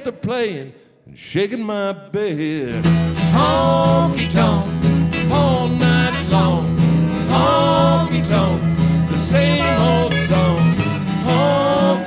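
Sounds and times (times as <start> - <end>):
acoustic guitars: 2.6 - 12.0
lap steel guitar: 2.9 - 12.0
voices singing: 3.2 - 12.0.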